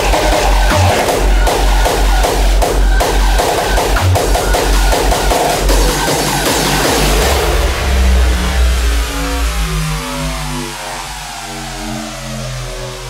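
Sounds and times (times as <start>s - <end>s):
heavy kick and bass: 0.0s - 13.0s
distorted electronic falling tones: 6.7s - 13.0s.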